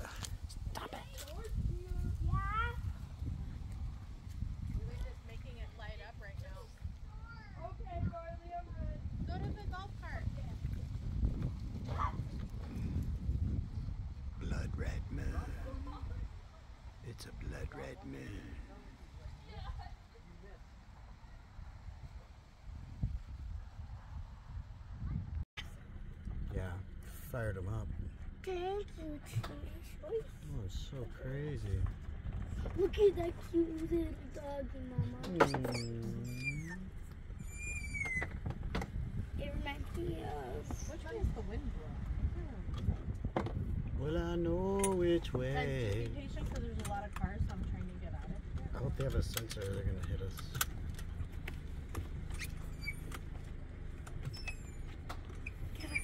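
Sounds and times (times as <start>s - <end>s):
low uneven background rumble: 0.0s - 56.0s
low drawn-out voice: 17.1s - 18.9s, 35.1s - 36.9s
puppy whining: 35.2s - 38.2s.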